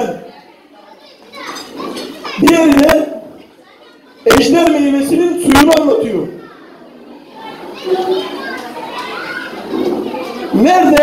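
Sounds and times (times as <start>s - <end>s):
children's voices: 0.0s - 11.0s
indistinct chatter of voices: 0.0s - 11.0s.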